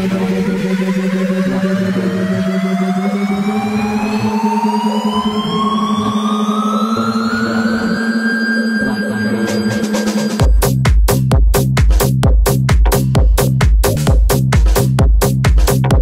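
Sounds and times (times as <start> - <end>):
electronic dance music build-up: 0.0 - 16.0.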